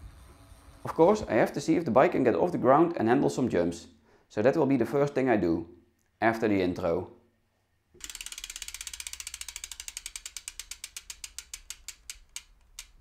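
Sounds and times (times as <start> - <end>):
bicycle freewheel hub ticking: 8.0 - 13.0.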